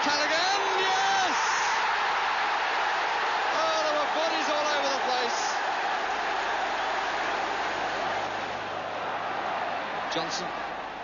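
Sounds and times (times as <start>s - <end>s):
long drawn-out shouts: 0.0s - 11.0s
stadium crowd cheering: 0.0s - 11.0s.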